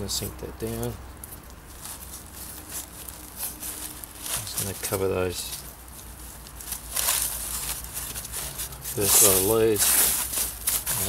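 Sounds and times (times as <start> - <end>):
hands rustling in soil and leaves: 0.0 - 11.0.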